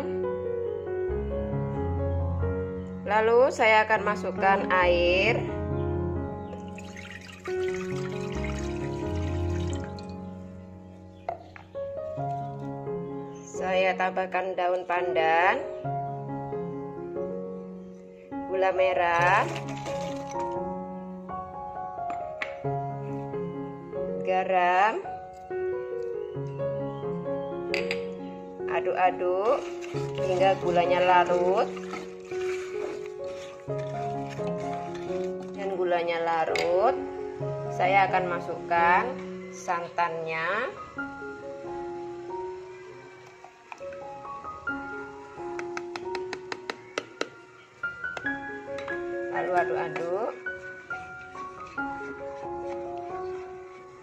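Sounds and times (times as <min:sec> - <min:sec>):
instrumental background music: 0:00.0 - 0:54.0
water pouring into a pot: 0:06.6 - 0:10.2, 0:19.2 - 0:20.5, 0:29.6 - 0:35.6.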